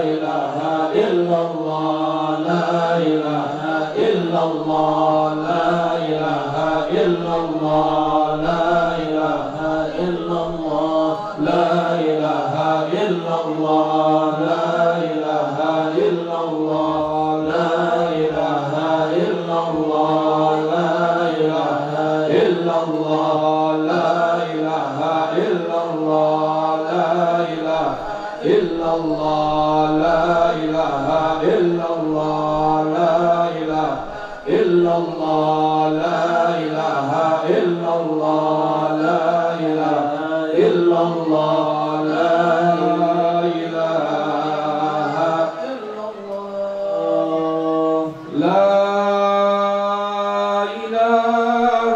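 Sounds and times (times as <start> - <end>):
men chanting in unison: 0.0 - 51.9.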